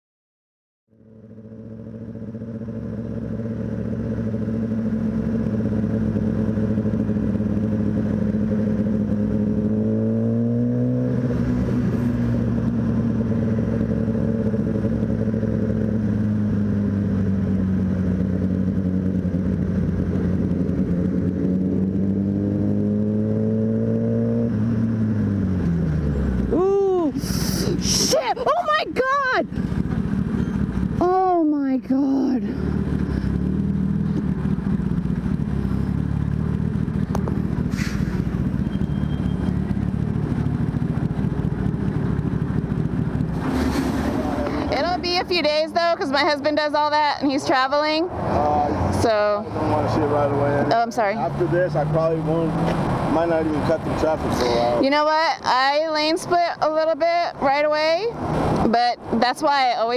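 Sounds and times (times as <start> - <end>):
motorcycle engine running: 0.9 - 59.9.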